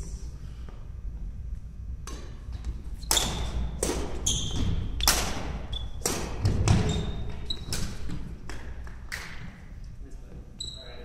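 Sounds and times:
sneaker squeaks: 3.0 - 8.3, 10.6 - 11.0
racket striking shuttlecock: 3.1 - 4.2, 5.0 - 6.9.

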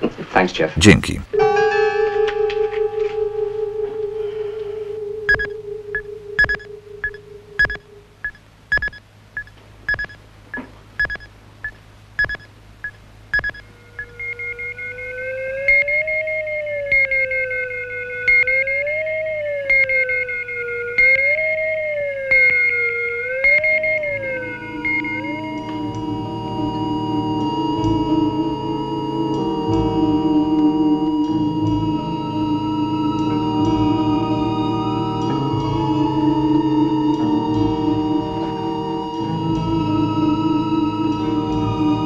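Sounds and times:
wavering theremin-like tone: 13.8 - 25.7.

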